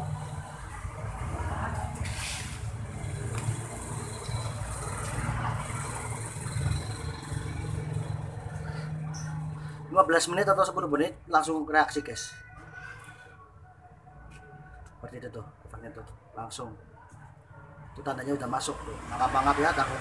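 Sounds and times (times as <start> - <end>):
short hiss: 2.0 - 2.6.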